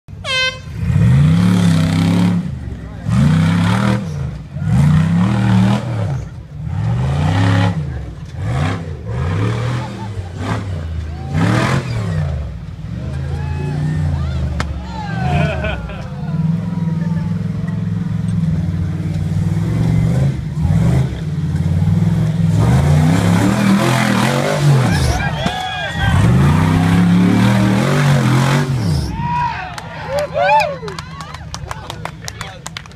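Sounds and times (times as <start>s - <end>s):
buggy engine revving: 0.1s - 32.9s
spectators' voices: 6.0s - 19.5s, 24.2s - 28.3s.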